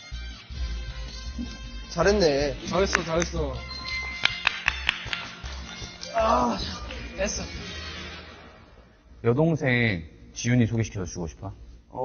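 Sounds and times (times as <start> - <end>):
light background music: 0.0 - 12.0
hand claps: 2.7 - 7.1.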